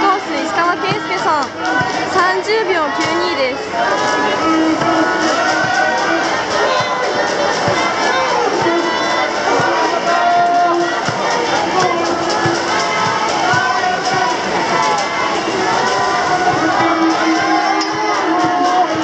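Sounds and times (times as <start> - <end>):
music playing: 0.0 - 19.0
spectators cheering and shouting: 0.0 - 19.0.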